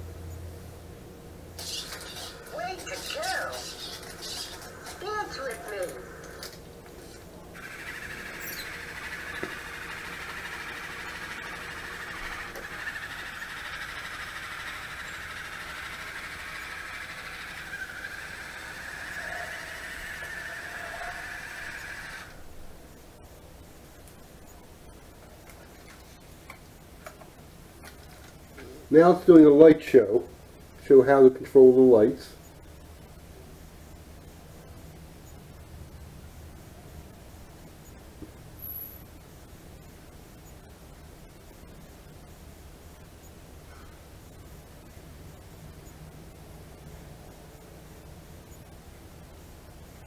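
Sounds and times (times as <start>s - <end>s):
robot electronic voice: 1.6s - 6.3s
robot motors whirring: 1.6s - 6.6s, 7.6s - 22.4s.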